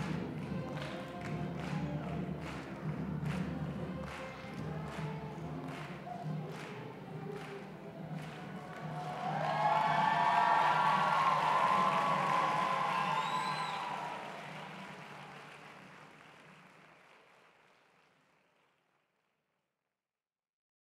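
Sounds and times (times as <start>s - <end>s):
audience applauding and cheering: 0.0s - 18.3s.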